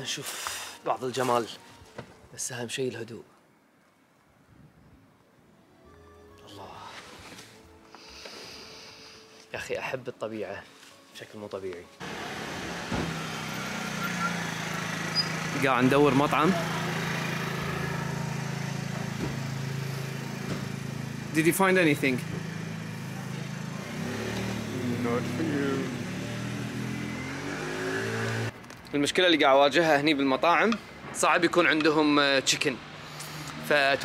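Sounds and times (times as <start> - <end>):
motorcycle engine running: 12.0 - 28.5.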